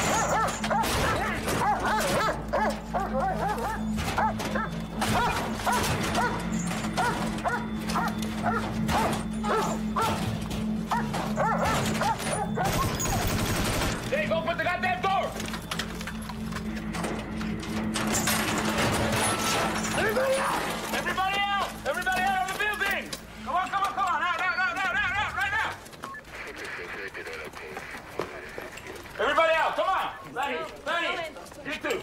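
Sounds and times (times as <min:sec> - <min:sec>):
dog barking and whining: 0:00.0 - 0:13.3
background music: 0:00.0 - 0:30.8
voices: 0:00.0 - 0:32.0.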